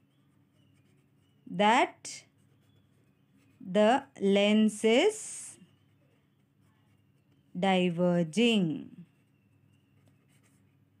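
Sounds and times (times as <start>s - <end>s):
felt-tip pen scratching on paper: 0.1s - 1.5s, 2.3s - 4.1s, 8.9s - 11.0s.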